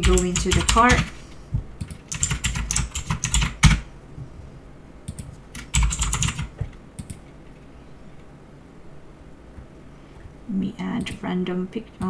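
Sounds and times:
typing on computer keyboard: 0.0s - 1.1s, 1.8s - 3.8s, 5.1s - 7.2s.

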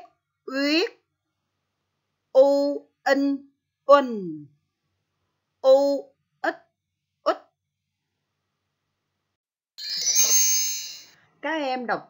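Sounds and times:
bright electronic chime: 9.8s - 11.2s.

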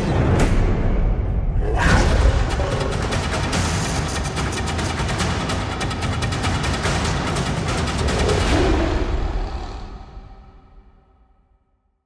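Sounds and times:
theme music with fast drums: 0.0s - 9.7s.

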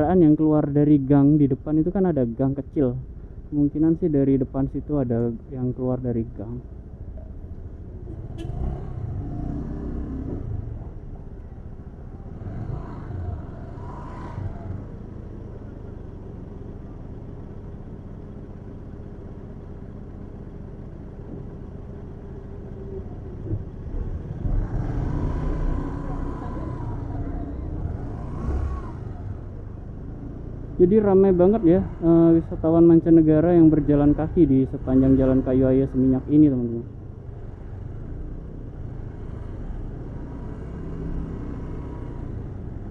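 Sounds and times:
scooter and vehicle engines: 0.0s - 42.9s.

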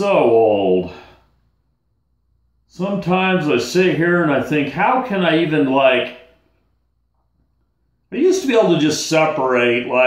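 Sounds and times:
man's voice: 0.0s - 1.2s, 2.7s - 6.3s, 8.1s - 10.0s.

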